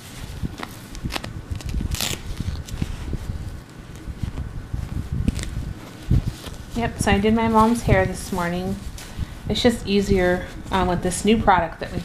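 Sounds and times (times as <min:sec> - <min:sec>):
diaper rustling and crinkling: 0:00.0 - 0:12.0
sharp crackles: 0:00.6 - 0:02.9.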